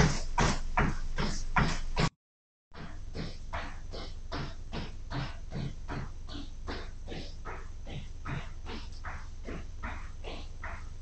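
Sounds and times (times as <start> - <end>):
steady low hum: 0.0 - 2.1, 2.8 - 11.0
hard rhythmic breathing: 0.0 - 2.2, 2.8 - 11.0.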